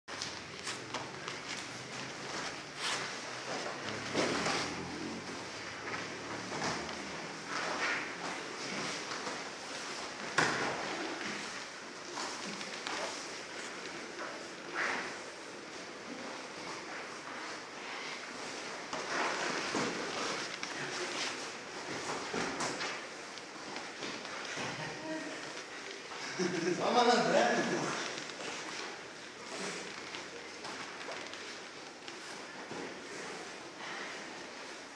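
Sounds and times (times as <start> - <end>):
fabric rustling on mats: 0.1 - 34.9.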